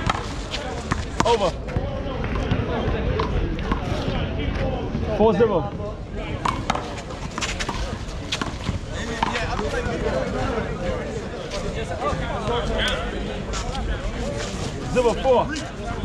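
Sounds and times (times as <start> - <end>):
voices chattering: 0.0 - 16.0.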